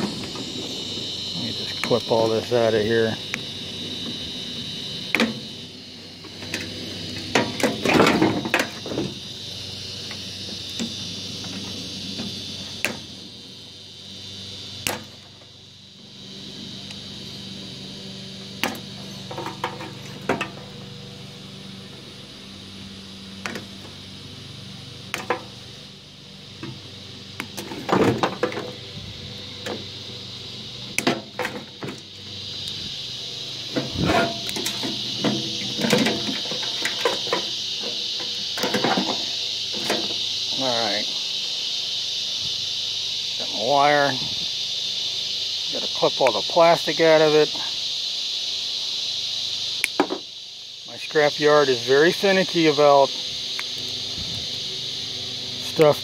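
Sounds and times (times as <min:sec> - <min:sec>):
high insect drone: 0:00.0 - 0:56.0.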